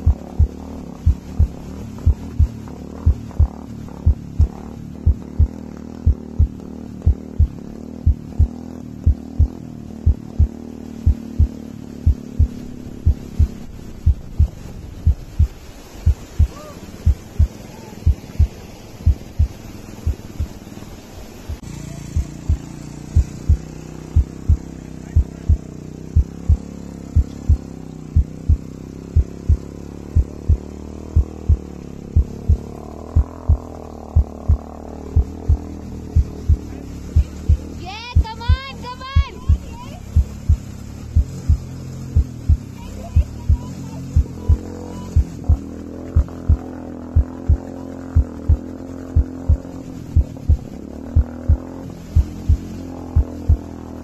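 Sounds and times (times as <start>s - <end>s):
deep thumping beat: 0.0s - 20.6s, 21.5s - 40.6s, 41.2s - 53.8s
low rumble: 0.0s - 54.0s.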